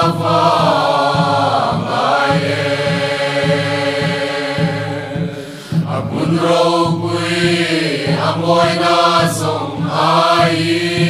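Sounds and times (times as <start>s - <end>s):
mixed choir singing a hymn: 0.0s - 11.0s.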